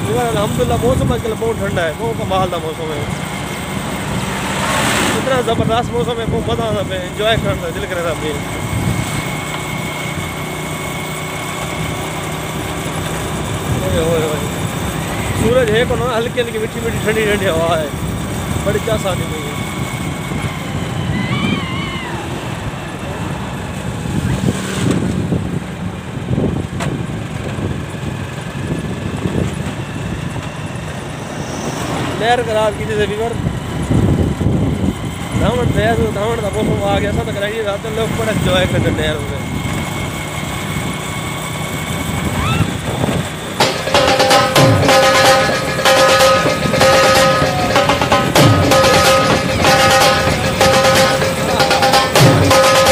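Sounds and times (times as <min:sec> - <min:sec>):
wind buffeting microphone: 0:00.0 - 0:10.4, 0:12.0 - 0:43.6
engine and road noise: 0:00.0 - 0:52.9
background music with drum strikes: 0:43.6 - 0:52.9.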